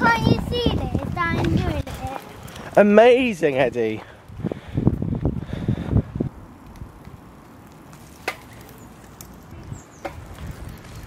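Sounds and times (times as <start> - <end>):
bicycle rustling on leafy path: 0.0 - 11.0.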